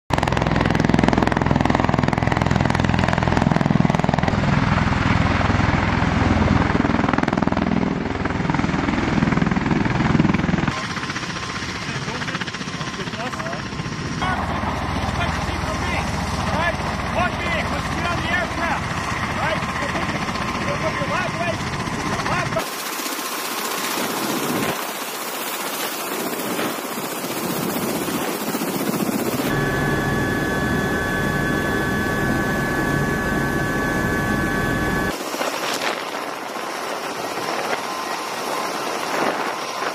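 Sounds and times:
tiltrotor aircraft deep drone: 0.1s - 39.9s
people talking: 11.8s - 18.8s, 19.4s - 21.6s, 22.2s - 22.7s.

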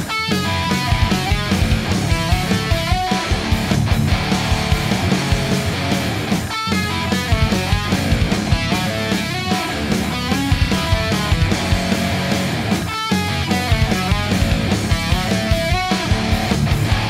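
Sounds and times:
distorted electric guitar riffing: 0.0s - 17.0s.

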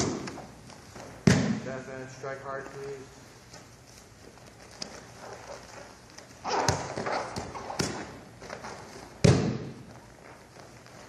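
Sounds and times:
rustling clothing: 2.5s - 7.2s
footfalls on mats: 6.4s - 11.0s.

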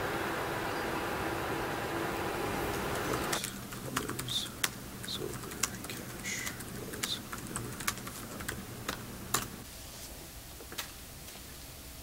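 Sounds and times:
outdoor hiss: 0.0s - 12.0s
keyboard typing clicks: 3.1s - 9.5s.

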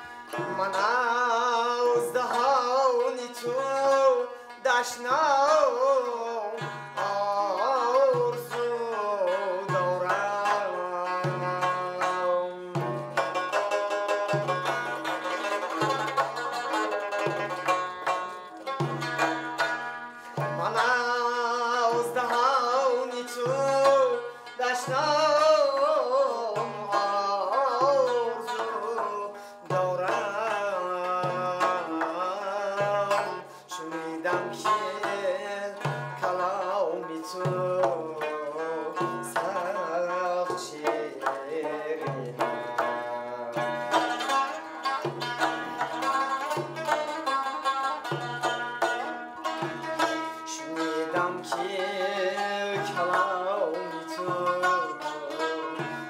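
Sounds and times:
frame drum rhythm: 0.0s - 56.0s
plucked long-necked lute: 0.0s - 56.0s
young man singing: 0.0s - 56.0s.

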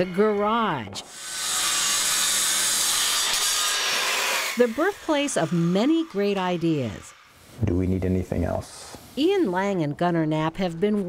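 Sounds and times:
circular saw cutting plywood: 0.0s - 7.4s.

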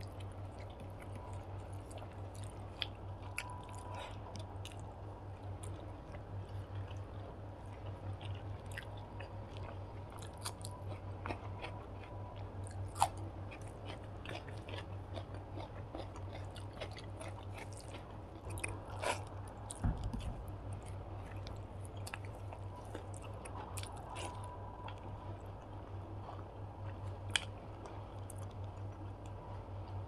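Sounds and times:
low hum: 0.0s - 30.0s
person chewing food: 0.0s - 30.0s.

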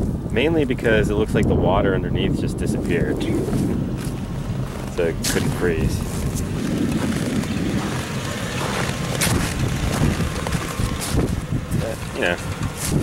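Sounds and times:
wind buffeting microphone: 0.0s - 13.0s
footsteps crunching in snow: 2.8s - 13.0s.

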